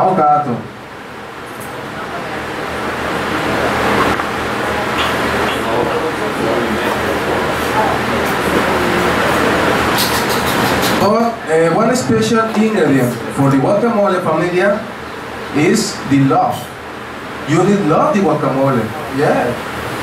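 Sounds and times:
murmur of many voices: 0:00.0 - 0:20.0.

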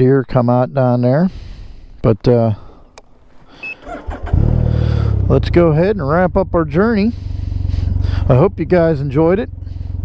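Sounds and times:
engine starting and idling: 0:02.6 - 0:05.8.

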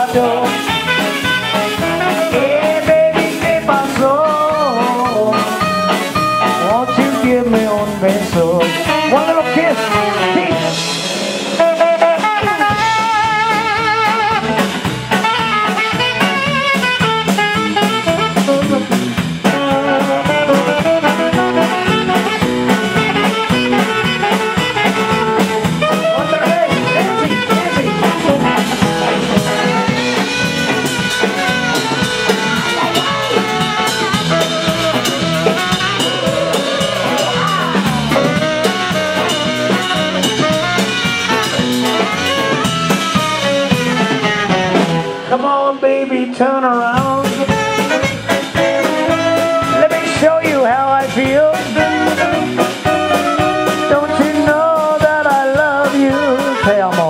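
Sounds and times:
drums: 0:00.0 - 0:57.0
electric bass: 0:00.0 - 0:57.0
electric guitar: 0:00.0 - 0:57.0
tenor saxophone melody: 0:00.2 - 0:03.1, 0:11.6 - 0:45.2, 0:47.3 - 0:50.1, 0:51.7 - 0:54.6, 0:56.0 - 0:57.0.

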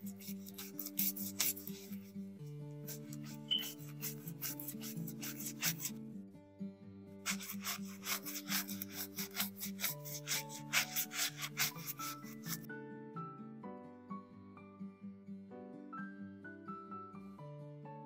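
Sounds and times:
brush scrubbing coin in lather: 0:00.0 - 0:02.1, 0:02.9 - 0:05.9, 0:07.2 - 0:12.6.

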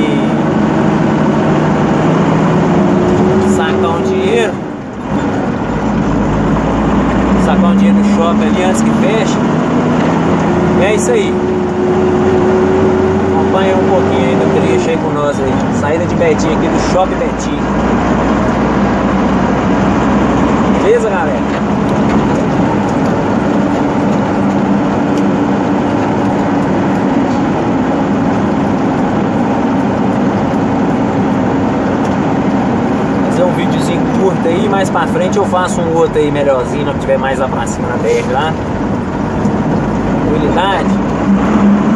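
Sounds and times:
road noise inside cab: 0:00.0 - 0:41.9
truck engine running: 0:00.0 - 0:41.9.

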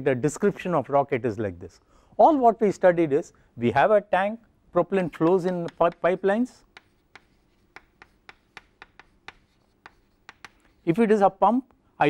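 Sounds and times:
chalk writing on a chalkboard: 0:04.8 - 0:11.3.

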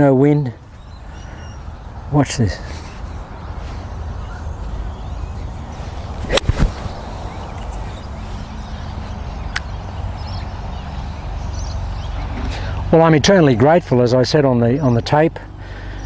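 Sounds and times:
golf club swishing: 0:05.4 - 0:08.6
golf ball struck crack: 0:06.2 - 0:07.5.

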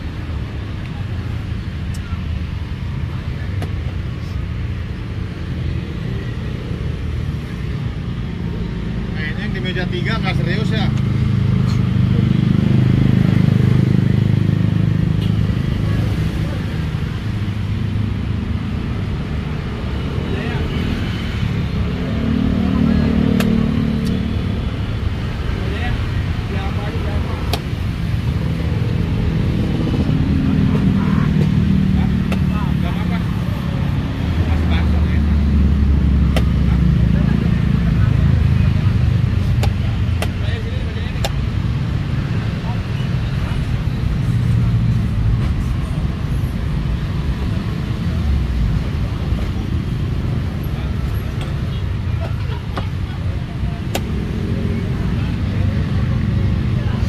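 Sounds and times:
road traffic passing: 0:00.0 - 0:57.0
murmur of voices: 0:19.2 - 0:57.0.

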